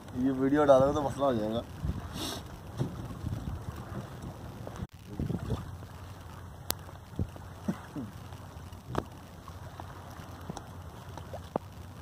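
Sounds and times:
boat engine rumble: 0.0 - 12.0
wind on microphone: 0.7 - 5.9.

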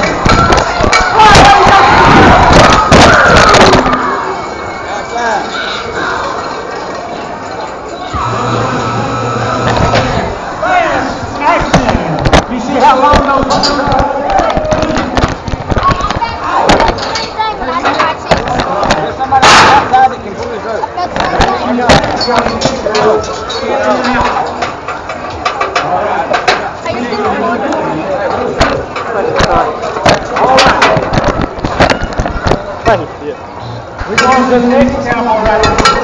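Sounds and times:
voices shouting: 0.0 - 6.6
knocks and rattles: 28.6 - 32.7.

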